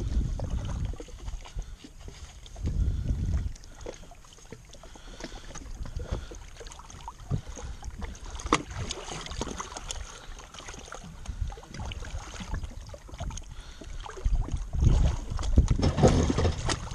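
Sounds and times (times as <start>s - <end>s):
wind rumble on microphone: 0.0s - 3.9s, 5.6s - 10.2s, 11.0s - 16.9s
water lapping against hull: 0.0s - 16.9s.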